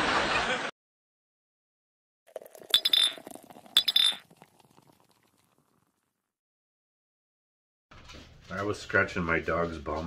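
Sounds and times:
bright clinks: 0:02.7 - 0:04.2.

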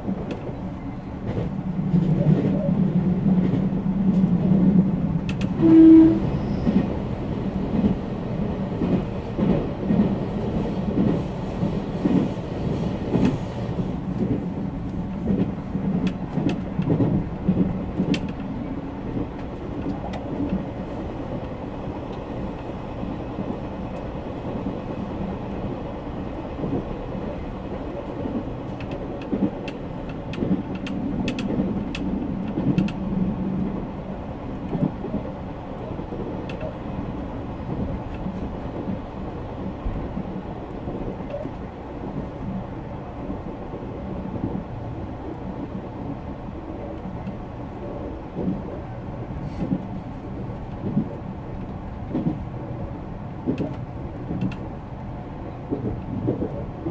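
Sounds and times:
train wheels rumbling on rail: 0:00.0 - 0:56.9
sharp track clicks: 0:03.2 - 0:05.6, 0:14.2 - 0:18.5, 0:28.1 - 0:33.7, 0:53.3 - 0:54.8.

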